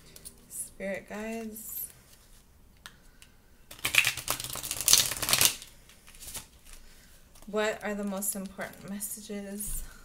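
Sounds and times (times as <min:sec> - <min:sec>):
cards being shuffled: 0:03.7 - 0:06.8.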